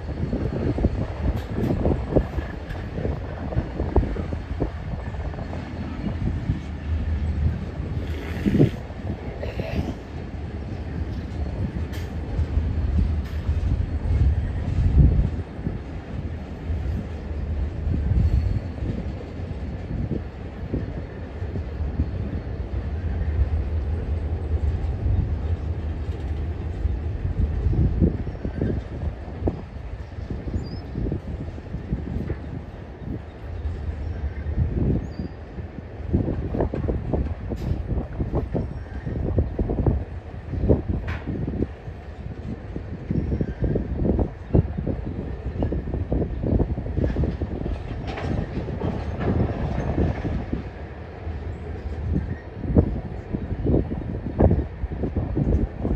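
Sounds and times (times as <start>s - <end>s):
freight train rumbling by: 0.0s - 55.9s.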